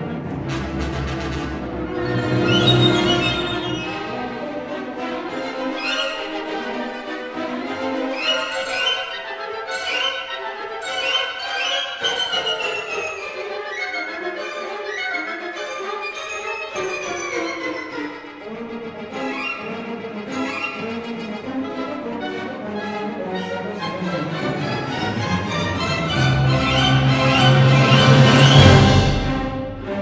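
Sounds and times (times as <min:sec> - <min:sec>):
low orchestral instruments: 0:00.0 - 0:30.0
orchestra strings melody: 0:00.0 - 0:30.0.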